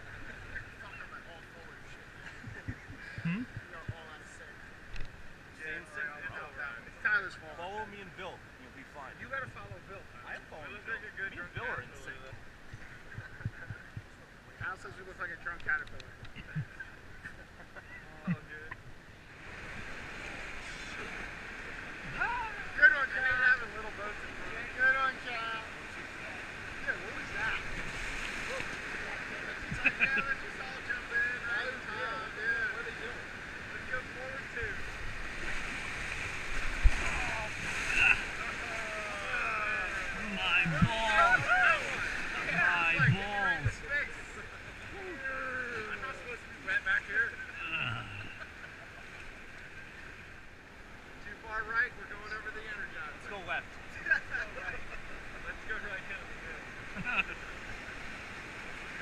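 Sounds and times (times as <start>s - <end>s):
rapids rushing: 19.2s - 48.3s.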